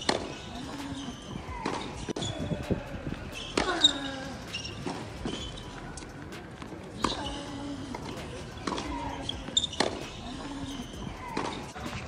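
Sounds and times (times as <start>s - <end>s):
balls bouncing on hard court: 0.0s - 2.8s, 3.4s - 12.0s
shoes squeaking: 0.0s - 12.0s
tennis balls hit with rackets: 0.0s - 12.0s.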